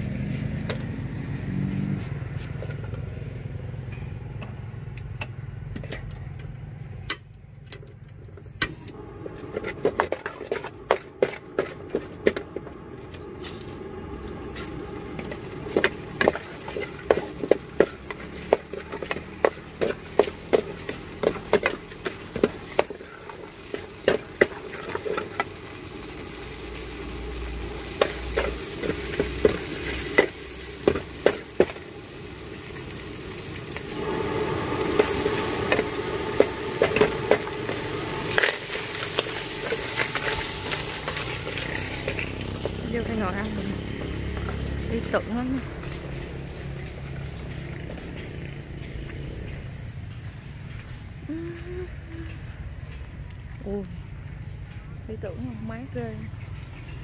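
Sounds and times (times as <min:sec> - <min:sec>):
engine running: 0:00.0 - 0:57.0
food sizzling in oil: 0:09.0 - 0:50.0
metal ladle scraping wok: 0:09.2 - 0:31.9, 0:33.7 - 0:50.1.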